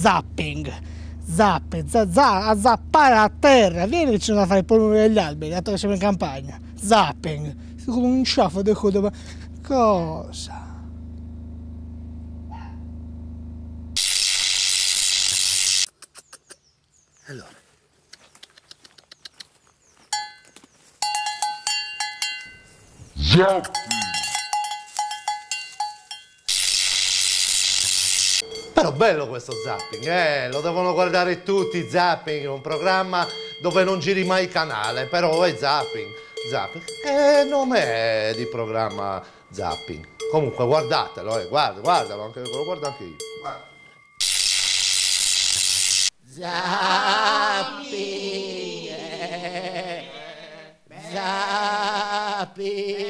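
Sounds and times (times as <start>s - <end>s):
cow bell clanking: 20.1s - 26.6s, 28.4s - 44.4s.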